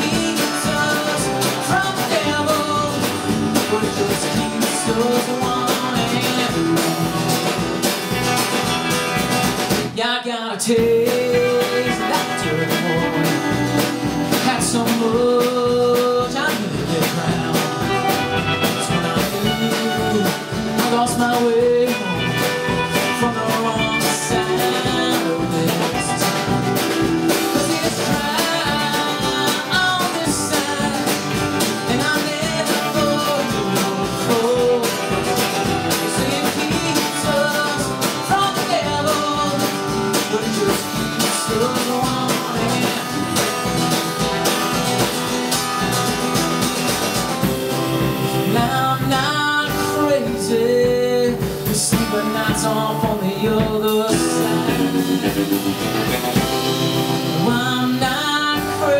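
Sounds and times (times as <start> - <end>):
electric guitar lead line: 0.0 - 10.0, 10.8 - 58.9
country-rock band playing: 0.0 - 58.9.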